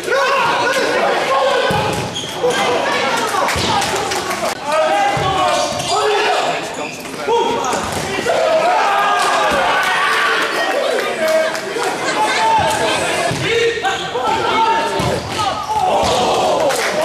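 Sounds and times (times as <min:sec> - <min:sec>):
players shouting: 0:00.0 - 0:17.0
shoe squeaks on hall floor: 0:02.0 - 0:02.8, 0:05.7 - 0:07.9.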